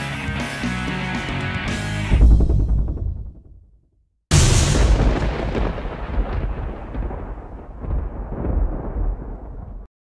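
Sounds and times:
thunder rumbling: 0:04.3 - 0:09.9.

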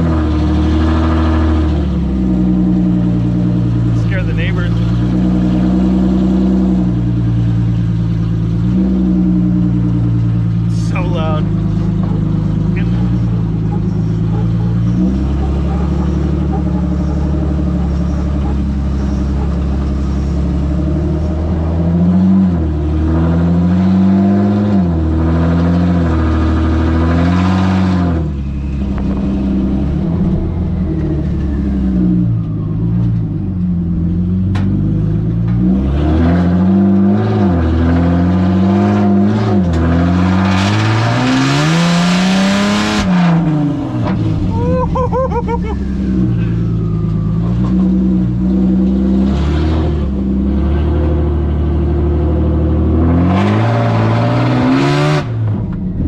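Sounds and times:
truck engine revving: 0:00.0 - 0:56.0.

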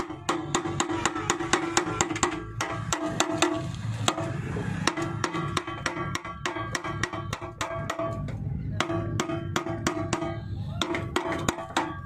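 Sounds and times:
hammer striking metal: 0:00.0 - 0:12.0.

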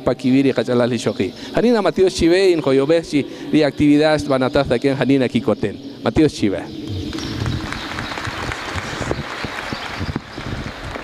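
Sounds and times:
audience applauding: 0:07.1 - 0:11.0.

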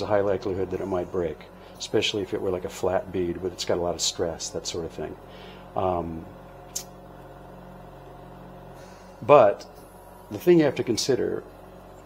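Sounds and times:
oxygen concentrator humming: 0:00.0 - 0:12.0.

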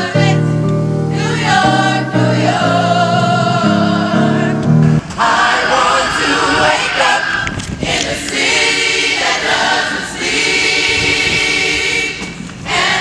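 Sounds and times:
gospel choir singing: 0:00.0 - 0:13.0.

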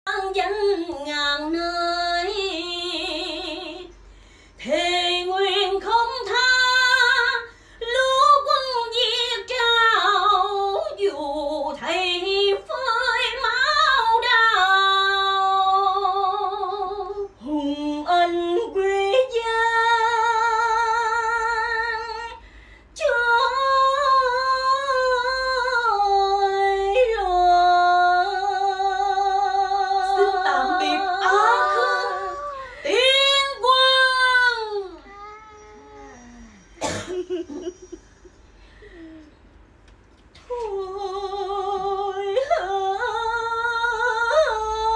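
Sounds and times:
woman singing opera: 0:00.1 - 0:03.9, 0:04.6 - 0:22.4, 0:23.0 - 0:35.0, 0:40.4 - 0:44.9.

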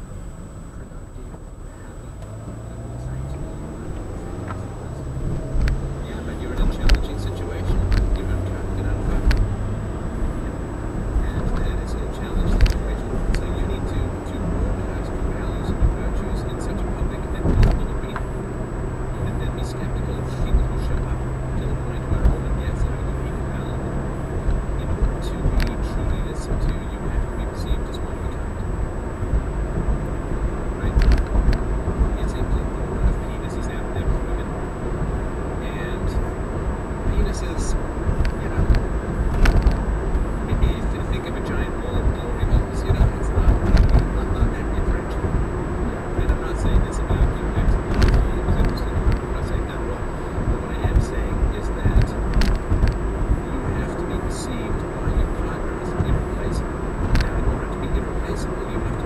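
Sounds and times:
car engine hum: 0:00.0 - 0:59.0
tyre road noise: 0:00.0 - 0:59.0
sharp thumps: 0:02.2 - 0:59.0.

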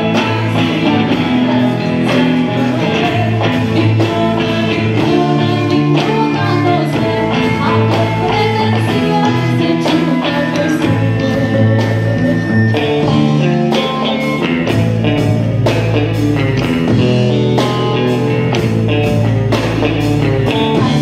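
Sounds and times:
drum kit beat: 0:00.0 - 0:21.0
electric guitar: 0:00.0 - 0:21.0.

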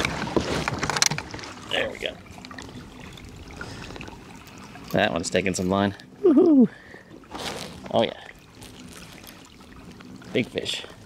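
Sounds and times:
water lapping against kayak hull: 0:00.0 - 0:11.0.

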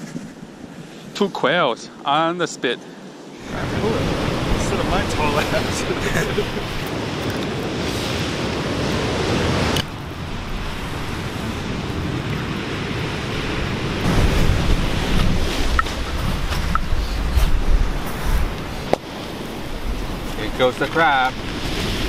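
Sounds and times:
ocean surf: 0:00.0 - 0:22.0
campfire crackling: 0:03.4 - 0:22.0
wind rumble on microphone: 0:03.4 - 0:22.0.

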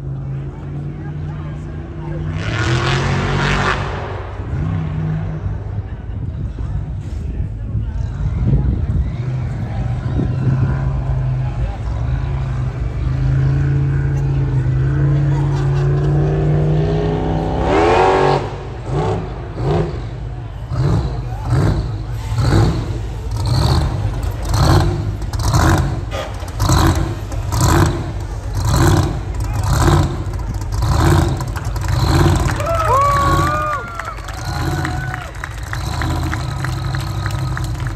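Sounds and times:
hot-rod engine revving: 0:15.8 - 0:37.9.

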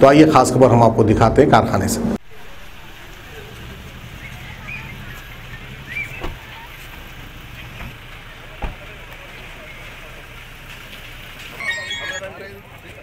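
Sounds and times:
car engine idling: 0:02.2 - 0:13.0.

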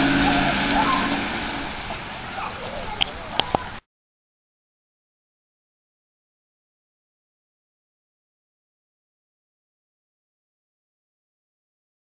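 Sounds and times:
vehicle engine driving off: 0:00.0 - 0:03.4.

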